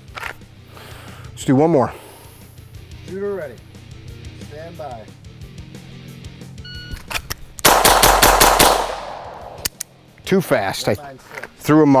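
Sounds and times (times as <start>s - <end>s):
gunshot echo: 7.6s - 9.8s
rapid pistol shots: 7.6s - 9.8s.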